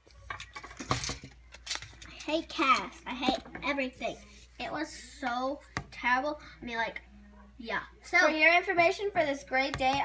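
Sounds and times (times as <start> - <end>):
plastic toys clicking and clinking: 0.1 - 2.9.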